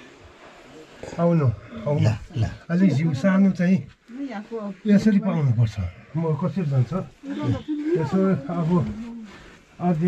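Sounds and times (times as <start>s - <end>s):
man speaking: 1.2s - 3.9s, 4.9s - 9.0s, 9.8s - 10.0s.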